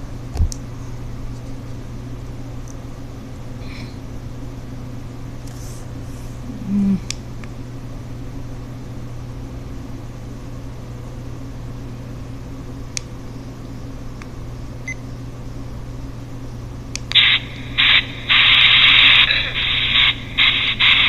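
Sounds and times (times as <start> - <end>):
steady low hum: 0.0 - 21.0
hissing static bursts: 17.2 - 21.0.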